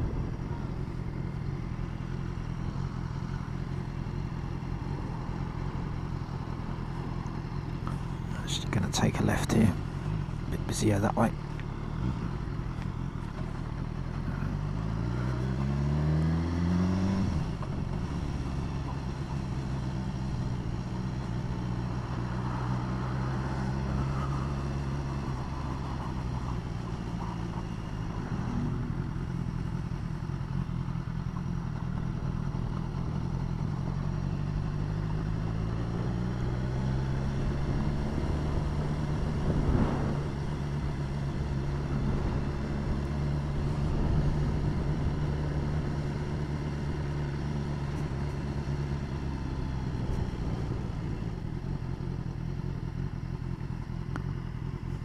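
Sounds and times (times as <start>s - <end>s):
road and wind noise: 0.0s - 55.0s
motorcycle engine accelerating: 11.4s - 55.0s.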